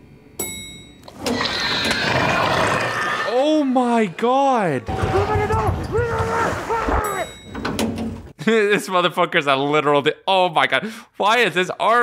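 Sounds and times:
elevator bell ding: 0:00.4 - 0:01.1, 0:07.0 - 0:07.9.

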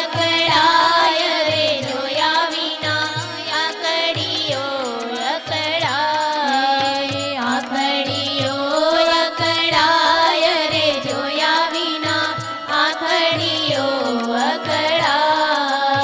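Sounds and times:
women singing devotional song: 0:00.0 - 0:16.0.

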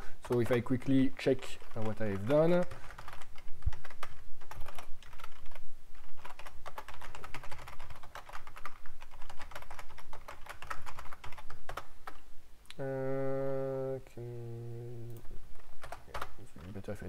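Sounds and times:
computer keyboard typing: 0:00.0 - 0:12.2, 0:15.1 - 0:17.0.

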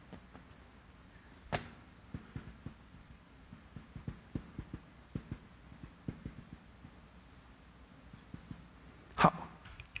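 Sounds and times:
marker tapping on whiteboard: 0:01.5 - 0:07.0, 0:08.1 - 0:08.8.

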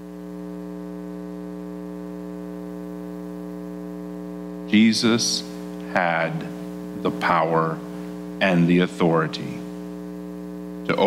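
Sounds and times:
buzzy electrical mains hum: 0:00.0 - 0:11.0.

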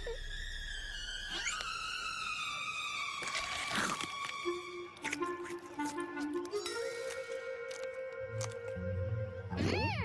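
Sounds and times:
cartoon background music: 0:03.7 - 0:10.0.

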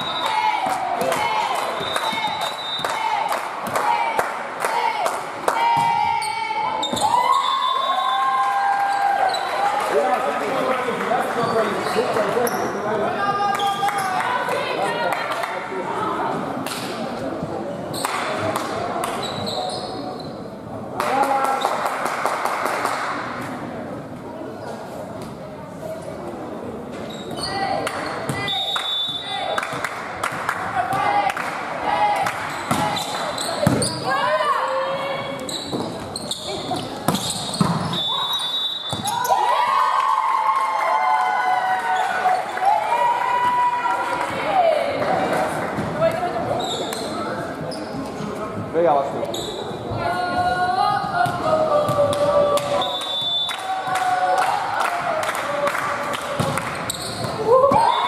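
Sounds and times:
referee's whistle blasts: 0:28.4 - 0:29.5, 0:37.3 - 0:39.1, 0:52.8 - 0:53.7
players shouting and cheering: 0:37.9 - 0:46.5, 0:50.0 - 0:58.0.

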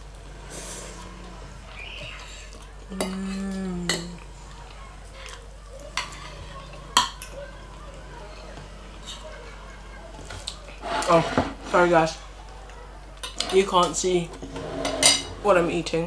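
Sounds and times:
person humming mmm: 0:02.9 - 0:04.2.

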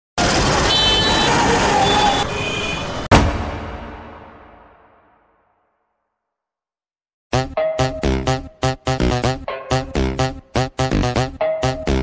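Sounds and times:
street traffic: 0:00.2 - 0:04.0
loud ringing hit: 0:03.1 - 0:05.1.

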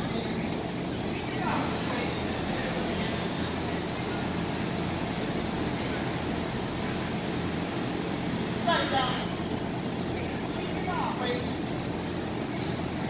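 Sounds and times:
distant voices: 0:00.0 - 0:13.0.

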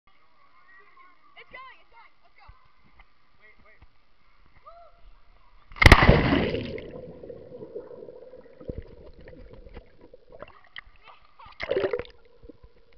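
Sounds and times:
person splashing into water: 0:05.8 - 0:10.6, 0:11.6 - 0:12.2
underwater rush: 0:05.8 - 0:10.8, 0:11.6 - 0:12.9.

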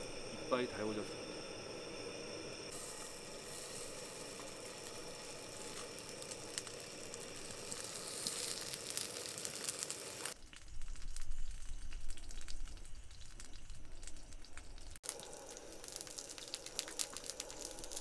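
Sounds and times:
fat crackling: 0:00.0 - 0:18.0
pork sizzling in hot fat: 0:00.0 - 0:18.0.

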